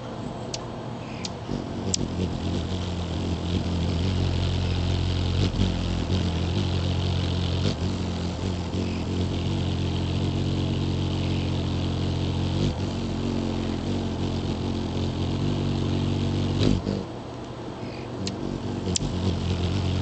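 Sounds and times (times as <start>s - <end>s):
hummingbird wings buzzing: 0.8s - 20.0s.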